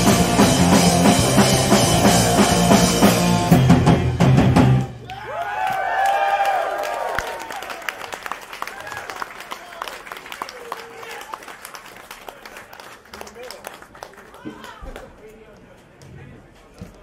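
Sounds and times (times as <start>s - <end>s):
punk rock band playing: 0.0s - 5.0s
crowd cheering and whooping: 4.9s - 11.3s
scattered clapping: 5.0s - 15.7s.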